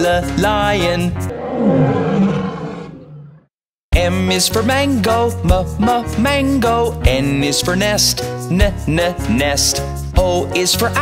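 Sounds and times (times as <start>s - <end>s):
music: 0.0s - 1.3s, 3.9s - 11.0s
cartoon lion roar: 1.2s - 3.5s.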